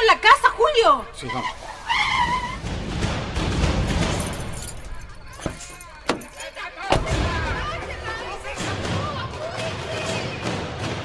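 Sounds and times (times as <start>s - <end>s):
tyre squeal: 1.2s - 2.7s.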